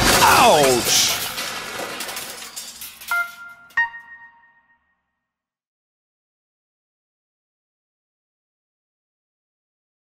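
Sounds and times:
debris clinking: 0.0 - 4.8.

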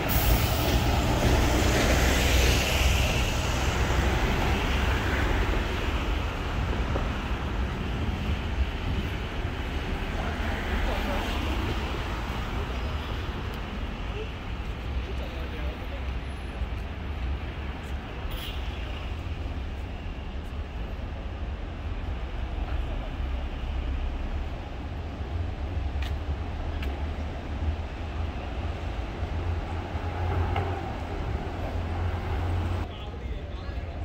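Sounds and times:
buses idling: 0.0 - 12.7.

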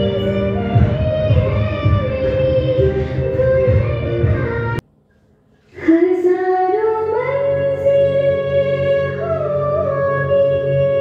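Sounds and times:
music with high voice singing: 0.0 - 4.8, 5.6 - 11.0.

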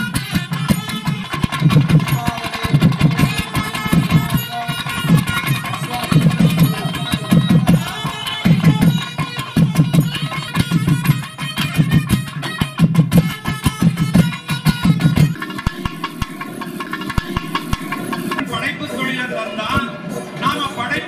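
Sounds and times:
fast drum beats: 0.0 - 18.7
sustained pitched melody: 0.8 - 10.1, 14.8 - 20.4.

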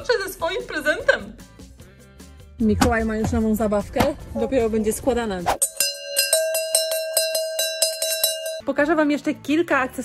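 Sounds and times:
bell-like chime: 5.6 - 8.7.

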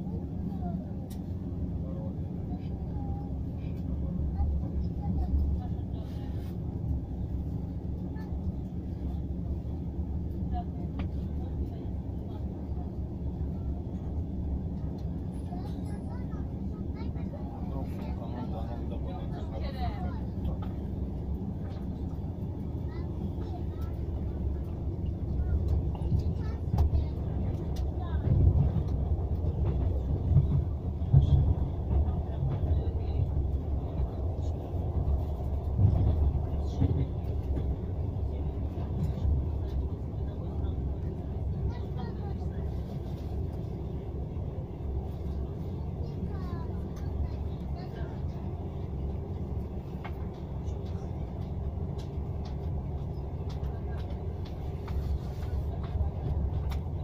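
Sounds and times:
train wheels rumbling on track: 0.0 - 57.0.

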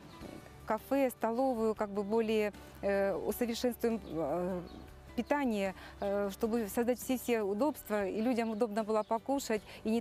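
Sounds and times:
woman speaking: 0.7 - 10.0.

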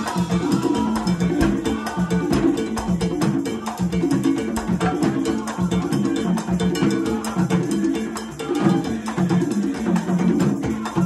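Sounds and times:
conga drums: 0.0 - 11.0
cowbell: 0.0 - 11.0.

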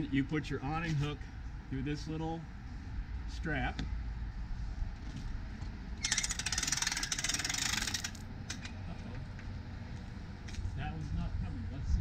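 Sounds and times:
awning roller clicking rattle: 6.0 - 8.6.

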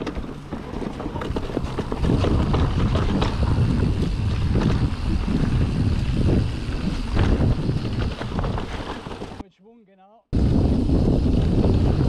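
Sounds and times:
bike rattling and knocking: 0.0 - 9.4, 10.4 - 12.0
tyres rumbling on dirt: 0.0 - 9.4
wind rushing over microphone: 0.0 - 9.4, 10.3 - 12.0.

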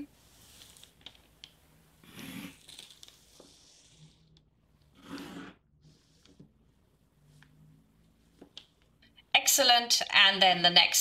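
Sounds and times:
pencil scratching: 5.0 - 6.3.

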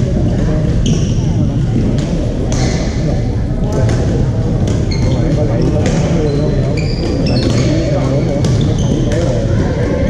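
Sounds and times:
many voices talking: 0.0 - 10.0
shoe squeaks on court: 4.8 - 9.3.

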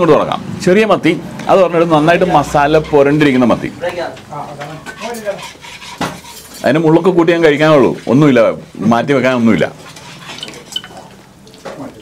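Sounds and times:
steel dishes clinking and scraping: 4.9 - 6.8, 9.9 - 11.2.

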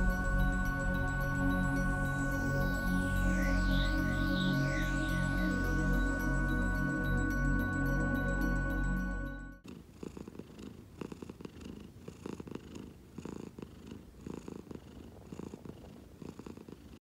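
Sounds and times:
music: 0.0 - 9.6
cat purring: 9.6 - 17.0.

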